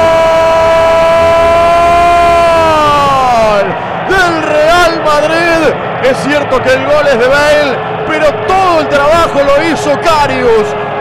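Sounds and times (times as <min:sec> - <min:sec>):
man commentating excitedly: 0:00.0 - 0:10.8.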